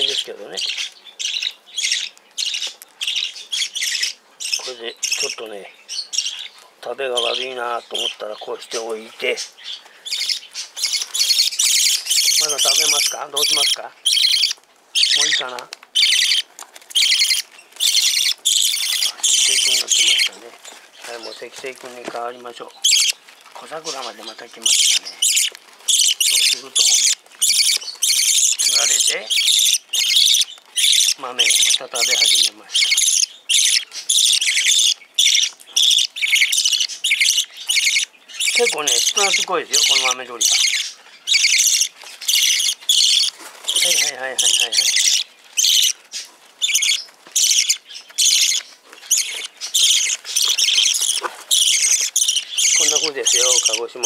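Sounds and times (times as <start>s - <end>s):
parrot chicks begging calls: 0.0s - 54.0s.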